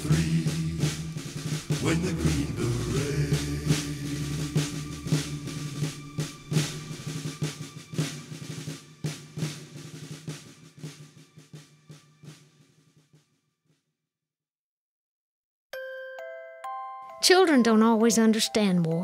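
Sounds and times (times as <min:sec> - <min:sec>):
snare drum beating with rolls: 0:00.0 - 0:13.1.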